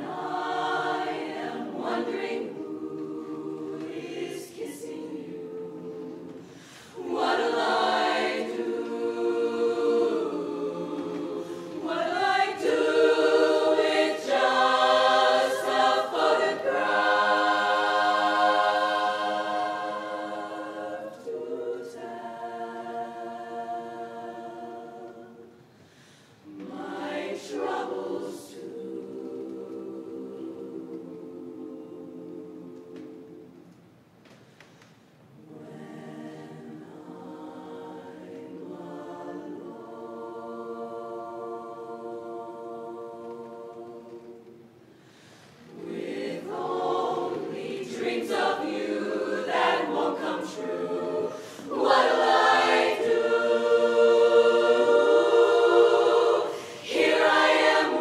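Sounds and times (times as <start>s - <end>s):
women's chorus singing in harmony: 0.0s - 58.0s.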